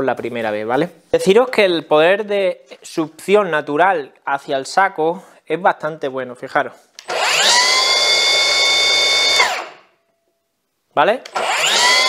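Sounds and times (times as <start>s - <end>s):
plunge saw whining and spinning down: 7.0s - 9.9s, 11.3s - 12.0s.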